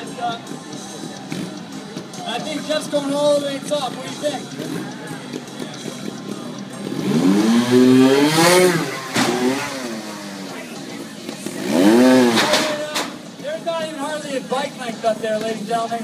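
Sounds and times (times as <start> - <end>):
motorcycle engine revving: 1.0 - 13.4
motorcycle landing knock: 9.1 - 9.7.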